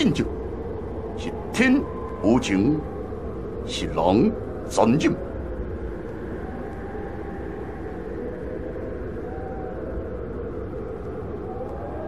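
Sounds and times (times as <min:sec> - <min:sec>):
wind-like rumble: 0:00.0 - 0:12.0
faint whistling tone: 0:05.2 - 0:12.0.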